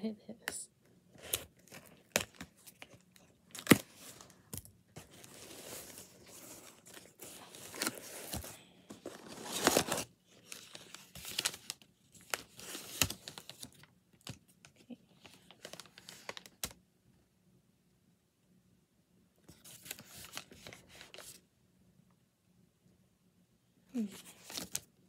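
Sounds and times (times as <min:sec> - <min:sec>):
cardboard and tape tearing: 0:01.2 - 0:04.2, 0:05.0 - 0:13.7
paper crinkling: 0:05.0 - 0:16.8, 0:19.5 - 0:21.4, 0:24.0 - 0:24.9.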